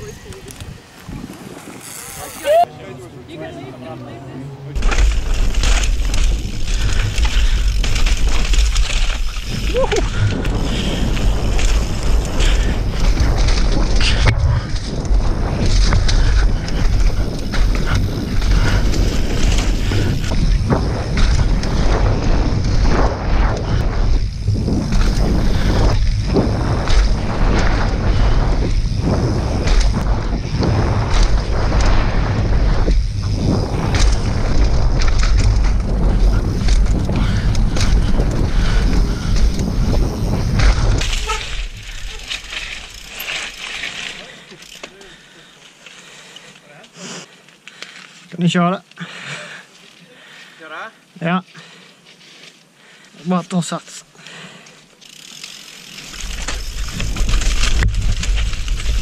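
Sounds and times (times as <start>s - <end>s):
wind buffeting microphone: 0.0s - 2.4s, 4.8s - 43.0s
bike tyres on dirt trail: 0.0s - 2.7s, 4.7s - 59.0s.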